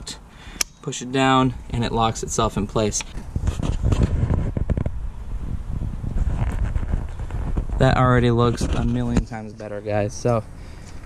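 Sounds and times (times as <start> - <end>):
wind buffeting microphone: 1.5 - 10.8.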